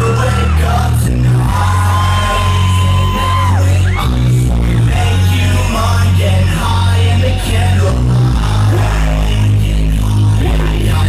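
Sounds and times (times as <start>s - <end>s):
distorted hip-hop bassline: 0.0s - 11.0s
person rapping: 0.0s - 11.0s.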